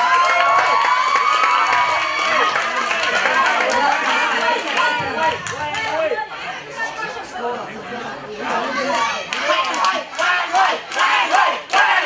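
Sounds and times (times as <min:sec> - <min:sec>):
audience cheering and clapping: 0:00.0 - 0:06.1.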